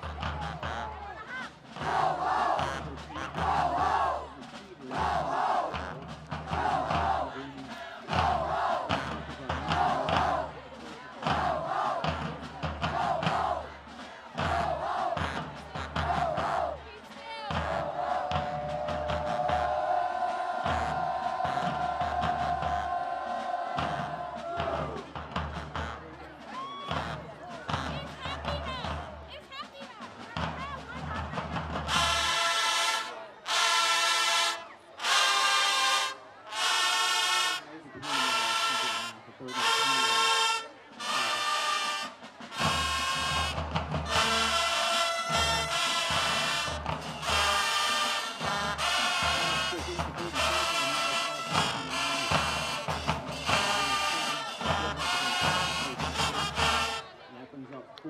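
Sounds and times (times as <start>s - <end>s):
marching band playing: 0.0s - 57.3s
loud brass blasts: 31.9s - 57.1s.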